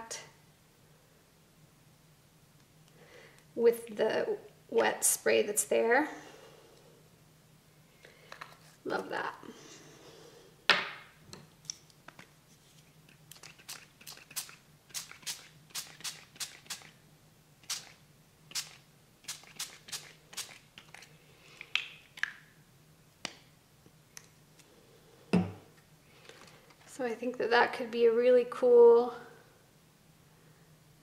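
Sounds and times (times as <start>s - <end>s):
fingertips tapping paper: 13.1s - 17.0s.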